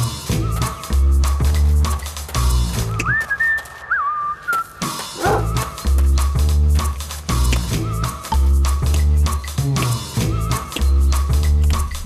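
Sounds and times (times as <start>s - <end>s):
person whistling a gliding tune: 2.9s - 5.0s
funk music with bass and guitar: 5.0s - 12.0s
dog woofing: 5.1s - 5.6s.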